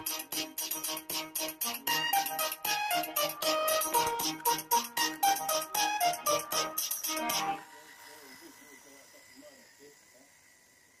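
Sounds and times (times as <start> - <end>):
faint distant voices: 7.3 - 11.0.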